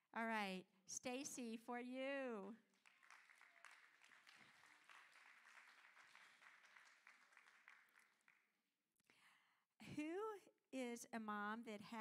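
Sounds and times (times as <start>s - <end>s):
faint audience clapping: 2.7s - 8.6s.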